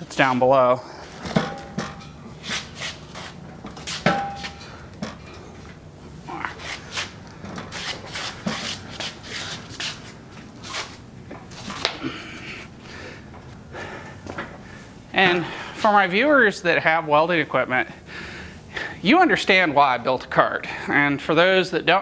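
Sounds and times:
metal cart rattling and clanking: 3.5 - 5.5.

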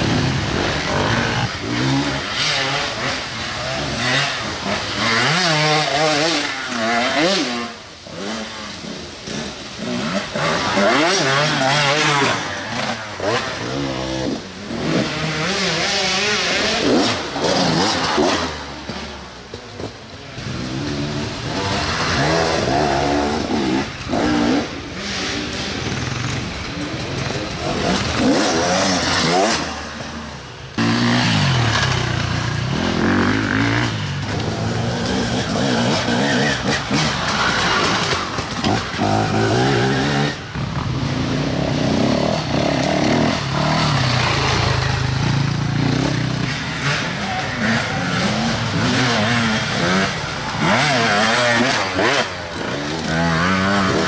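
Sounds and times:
dirt-bike engines revving: 0.0 - 54.0.

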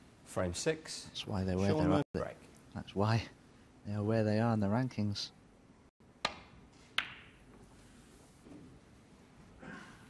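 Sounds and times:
cue ball hitting snooker balls: 6.3 - 7.4.

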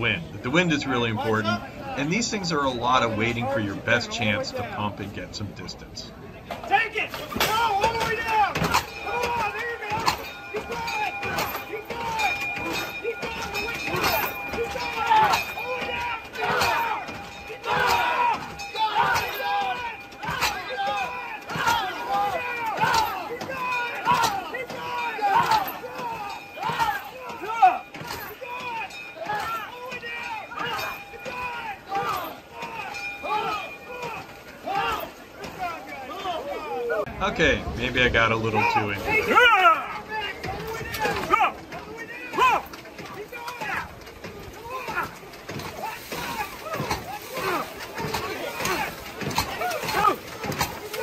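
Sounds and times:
people shouting: 6.6 - 37.1, 38.6 - 51.0
pump brakes knocking: 6.6 - 51.0.

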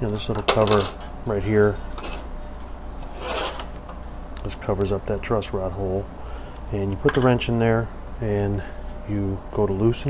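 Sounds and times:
steady low hum: 0.0 - 10.0
guitar strings rubbed and rattled: 0.8 - 4.0
short scrape: 3.0 - 3.7.

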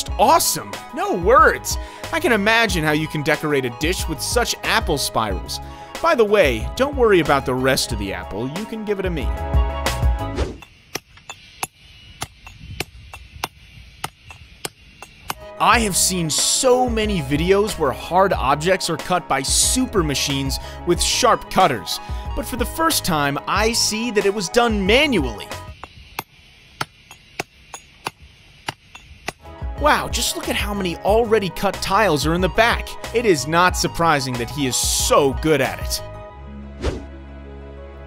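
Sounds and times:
hammer striking chisel on stone: 10.6 - 15.4, 25.7 - 29.4.

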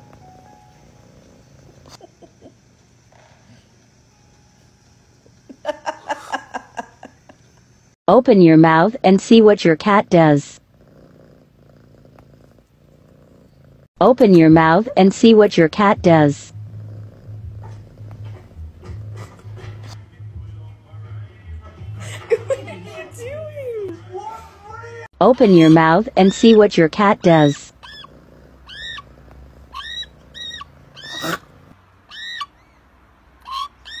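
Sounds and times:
cat purring: 0.0 - 3.9, 8.9 - 13.9, 14.5 - 20.2, 25.5 - 31.8.

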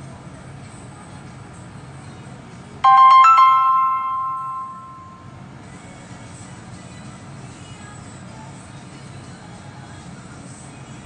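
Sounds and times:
faint background music: 0.0 - 11.0
phone notification chime: 2.9 - 5.3.

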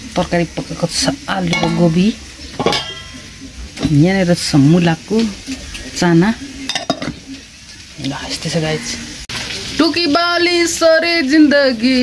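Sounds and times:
steel bowl and spoon clinking: 1.4 - 3.9, 6.6 - 7.2.

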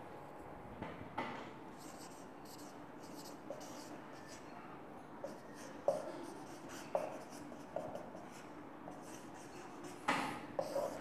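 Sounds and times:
marker writing on whiteboard: 1.8 - 4.5, 5.2 - 11.0.

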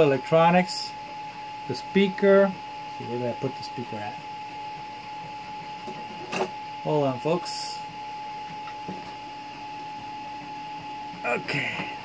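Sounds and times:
high-pitched machine whine: 0.0 - 12.0.

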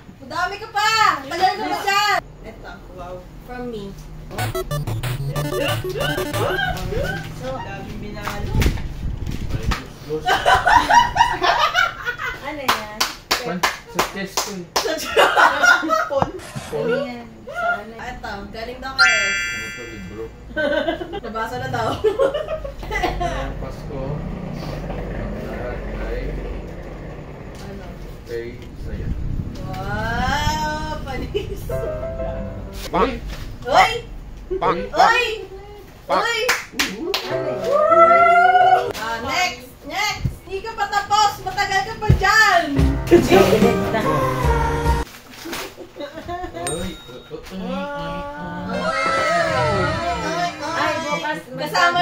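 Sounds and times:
people laughing: 10.3 - 12.4, 20.5 - 23.4.

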